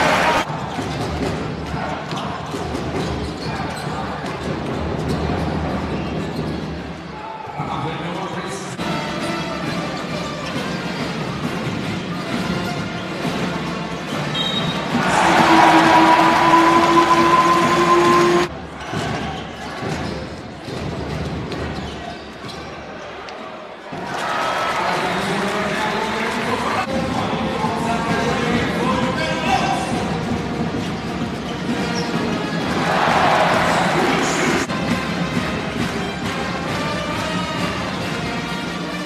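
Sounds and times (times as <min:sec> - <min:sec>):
crowd noise: 0:00.0 - 0:10.5, 0:13.4 - 0:39.0.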